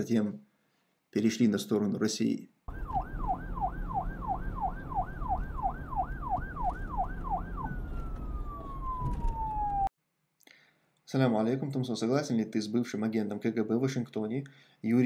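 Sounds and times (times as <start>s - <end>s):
warbling siren: 2.7s - 9.9s.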